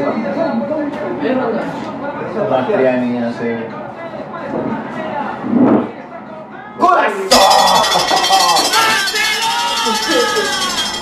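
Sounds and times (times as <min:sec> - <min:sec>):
broadcast voices: 0:00.0 - 0:11.0
stadium crowd noise: 0:06.6 - 0:11.0.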